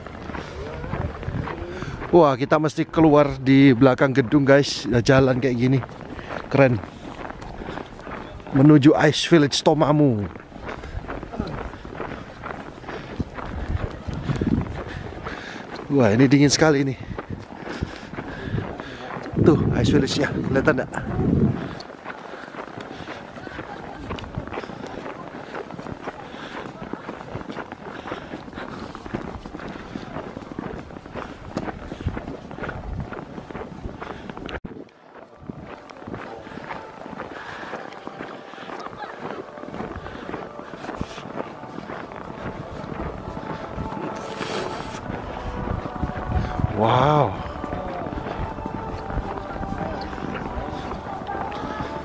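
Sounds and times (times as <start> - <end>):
footsteps on snow: 0.0 - 52.0
voices of people: 0.0 - 52.0
faint music: 34.8 - 52.0.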